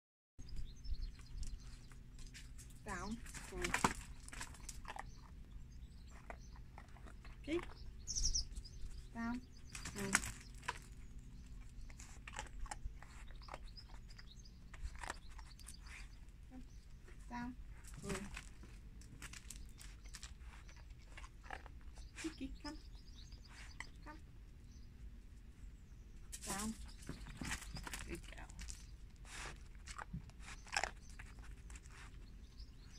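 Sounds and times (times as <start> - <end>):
bird chirping: 0.4 - 18.4, 19.4 - 25.0, 25.6 - 29.1, 30.2 - 32.9.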